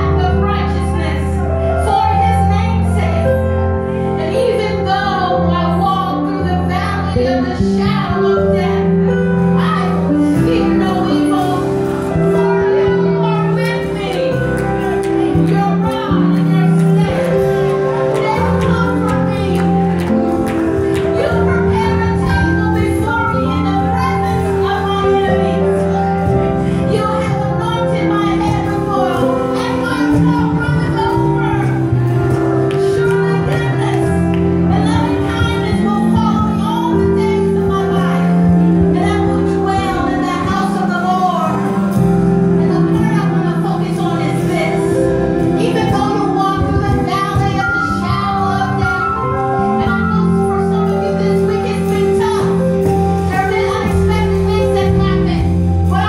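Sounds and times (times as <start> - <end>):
band playing sustained chords: 0.0 - 56.0
low bass line: 0.0 - 56.0.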